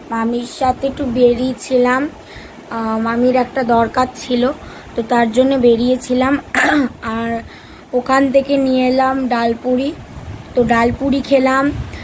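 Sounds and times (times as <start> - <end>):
young woman talking: 0.0 - 12.0.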